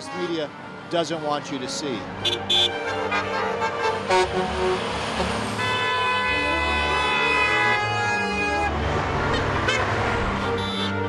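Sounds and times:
passing road traffic: 0.0 - 11.0
vehicle horn long honk: 2.2 - 4.6, 5.6 - 8.7, 9.3 - 11.0.

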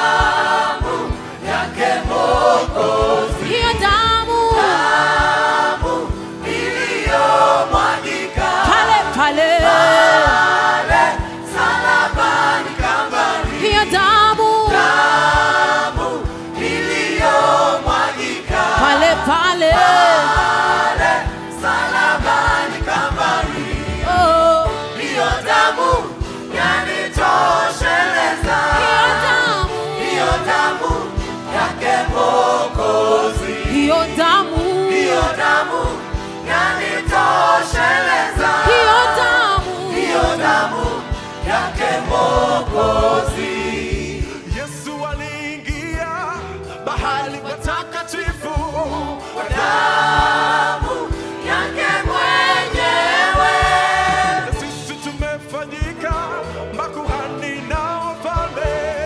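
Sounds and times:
children's choir singing gospel: 0.0 - 59.0
instrumental backing with beat: 0.0 - 59.0.

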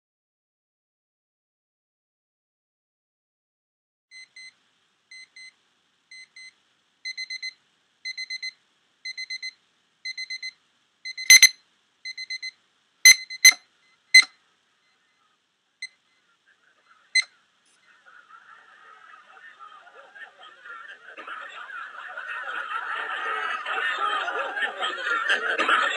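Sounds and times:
electronic sonar beeps: 11.1 - 12.5, 13.1 - 13.6.

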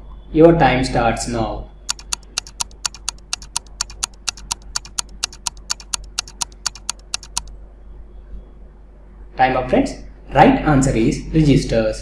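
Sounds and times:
timer ticking: 1.9 - 7.5.

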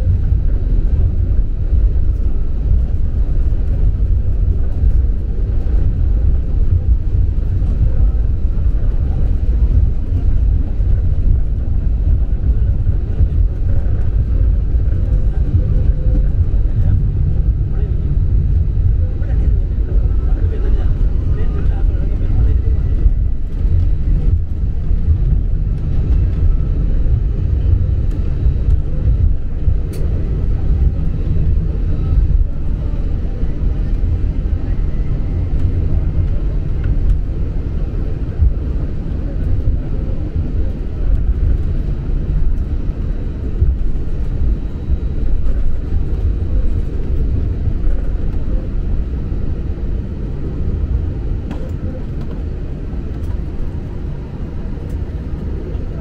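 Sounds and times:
airliner cabin rumble: 0.0 - 56.0.

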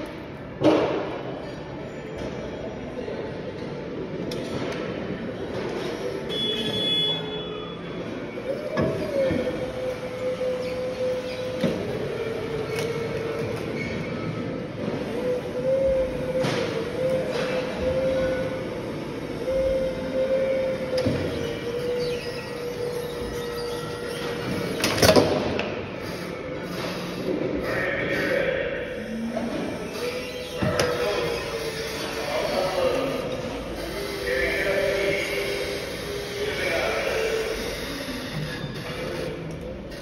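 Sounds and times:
hydraulic lift whine: 5.2 - 40.0.

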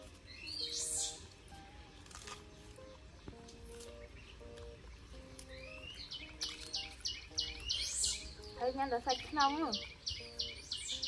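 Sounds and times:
small bird chirping: 0.0 - 11.0
soft background music: 0.0 - 11.0.

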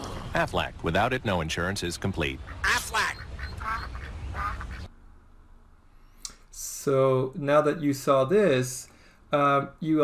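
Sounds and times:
duck quack voice: 2.6 - 4.8.

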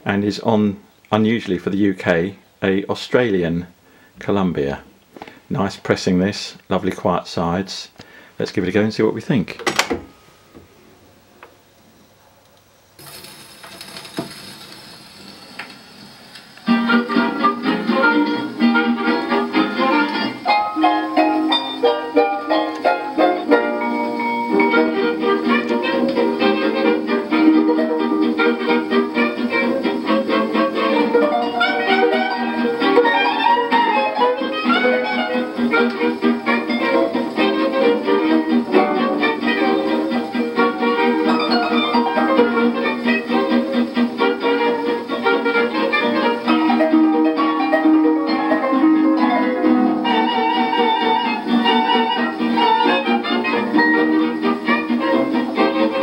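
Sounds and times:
record surface hiss: 0.0 - 56.0
harp-led dance band on gramophone: 13.0 - 56.0.

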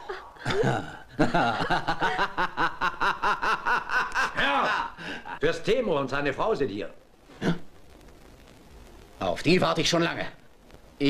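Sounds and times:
man laughing: 0.0 - 5.4.

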